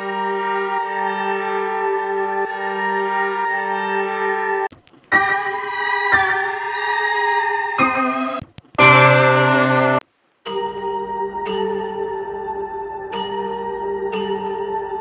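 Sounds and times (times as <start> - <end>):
synth keys chords: 0.0 - 15.0.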